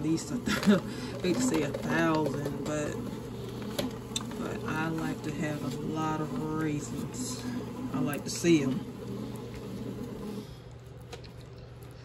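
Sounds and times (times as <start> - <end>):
bread machine motor churning dough: 0.0 - 12.0.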